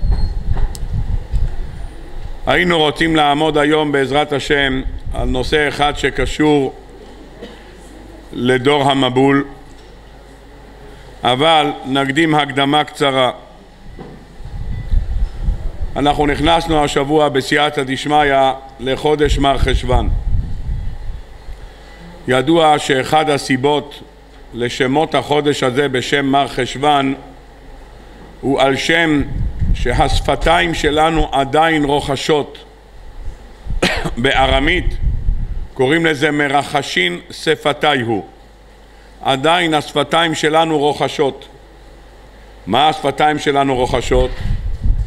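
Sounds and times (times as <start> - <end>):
low rumbling thumps: 0.0 - 1.8, 44.2 - 45.0
low muffled rumble: 0.0 - 2.4, 13.9 - 16.0, 44.3 - 45.0.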